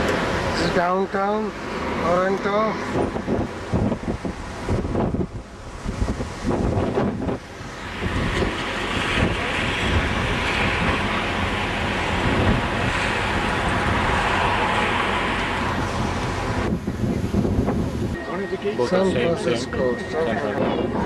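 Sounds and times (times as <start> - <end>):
street traffic rumbling: 0.0 - 21.0
wind buffeting microphone: 1.5 - 18.2, 19.0 - 21.0.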